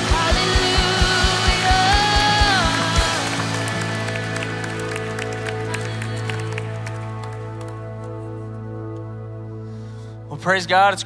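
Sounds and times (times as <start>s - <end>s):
scattered applause: 1.5s - 8.3s.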